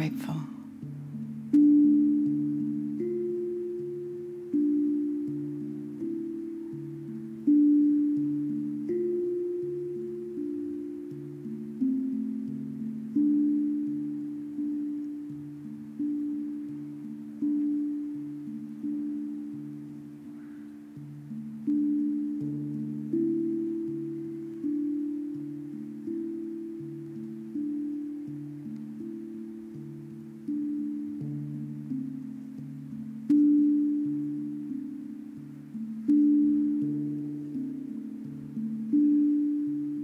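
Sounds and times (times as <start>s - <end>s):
low mallet percussion melody: 0.0s - 40.0s.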